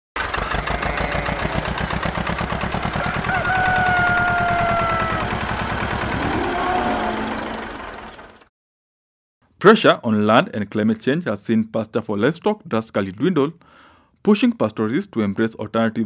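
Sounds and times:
tractor engine chugging: 0:00.2 - 0:08.5.

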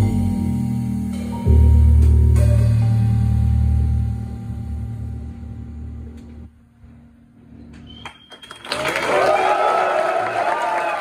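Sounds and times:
band low note: 0:00.0 - 0:07.7
audience applause: 0:08.4 - 0:11.0.

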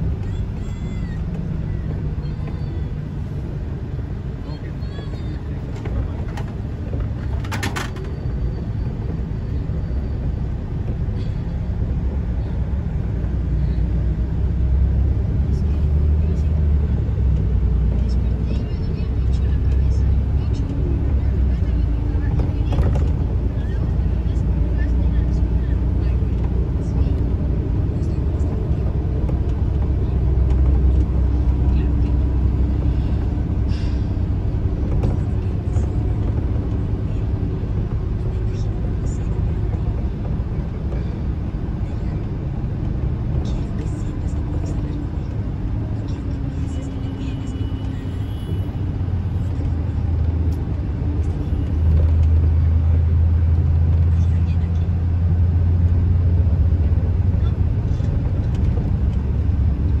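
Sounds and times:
engine and road rumble in cabin: 0:00.0 - 1:00.0.

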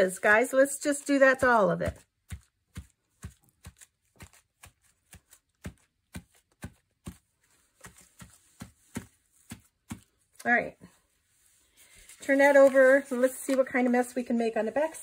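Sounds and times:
brush tapping on paper: 0:01.2 - 0:10.3.

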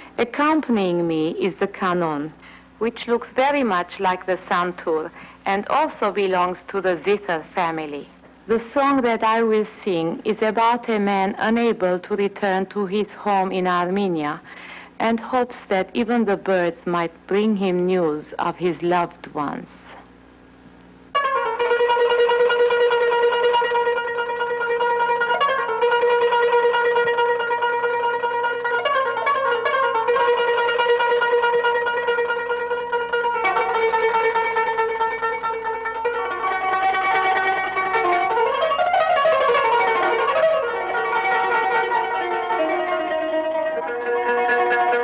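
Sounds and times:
plucked zither melody: 0:21.2 - 0:45.0.

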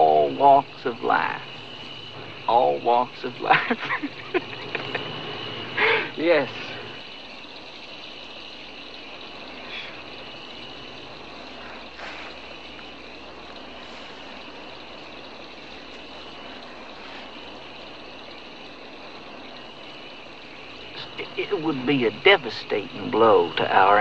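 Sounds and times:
insects chirping: 0:00.0 - 0:24.0.

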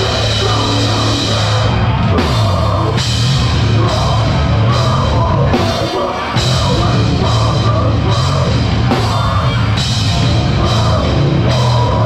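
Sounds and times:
metalcore band playing live: 0:00.0 - 0:12.0.

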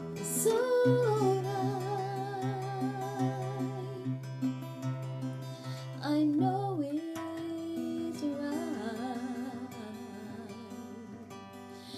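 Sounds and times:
acoustic guitar picking: 0:00.0 - 0:11.9
woman singing with vibrato: 0:00.2 - 0:04.3, 0:05.9 - 0:11.9.

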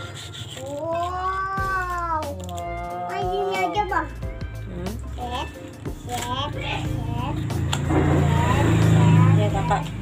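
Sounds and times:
vehicle engine passing by: 0:06.6 - 0:10.0.

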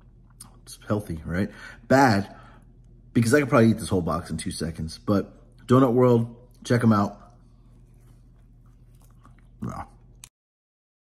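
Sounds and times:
man chewing: 0:07.2 - 0:10.3.

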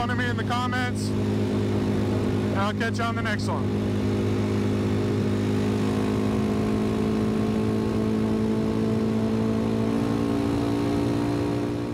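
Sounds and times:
motorcycle engine cruising: 0:00.0 - 0:11.9.

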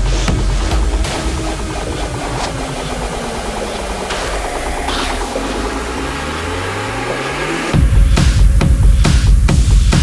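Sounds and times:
droning synth techno music: 0:00.0 - 0:10.0.

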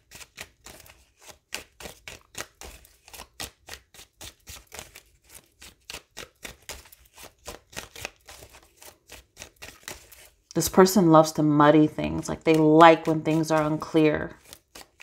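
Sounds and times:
cards being shuffled: 0:00.0 - 0:10.5, 0:12.4 - 0:15.0.

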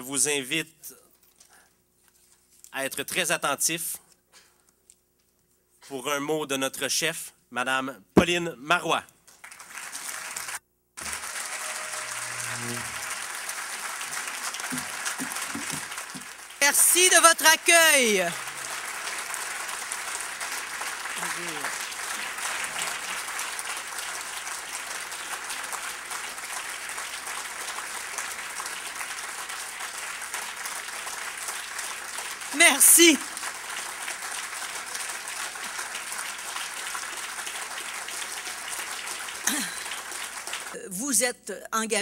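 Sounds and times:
audience applauding: 0:09.4 - 0:40.8
woman speaking over microphone: 0:40.8 - 0:42.0.

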